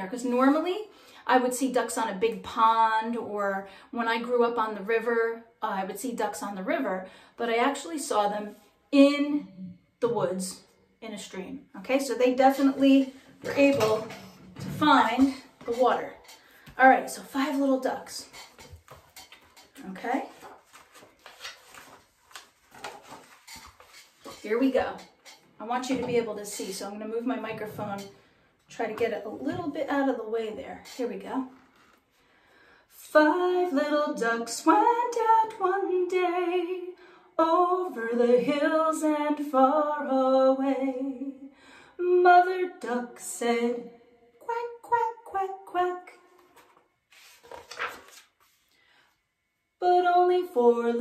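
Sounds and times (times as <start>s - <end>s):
book rustling and tapping: 17.9s - 25.4s, 46.4s - 48.6s.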